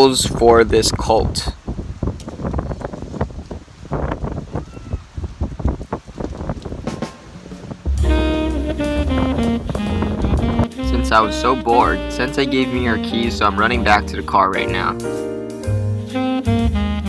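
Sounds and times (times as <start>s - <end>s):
wind on microphone: 0.0s - 13.9s
background music with bass: 6.8s - 17.0s.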